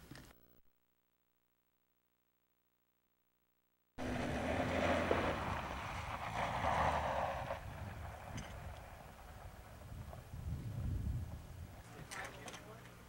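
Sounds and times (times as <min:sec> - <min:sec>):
rally car engine running hard: 0:04.0 - 0:10.2
tyres rushing on loose gravel: 0:04.0 - 0:10.3.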